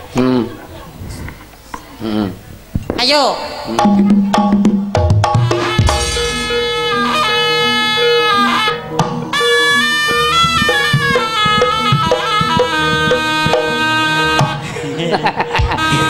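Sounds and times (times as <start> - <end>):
drums: 2.5 - 14.7, 15.4 - 16.0
repeating low line: 5.6 - 7.8.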